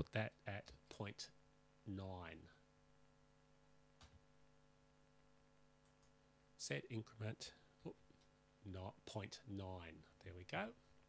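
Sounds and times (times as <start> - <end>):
person speaking: 0.0 - 2.7, 6.5 - 10.9
faint low hum: 0.0 - 11.0.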